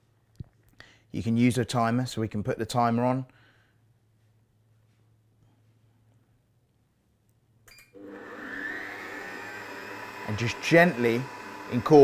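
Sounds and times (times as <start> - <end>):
stand mixer motor whine: 8.0 - 12.0.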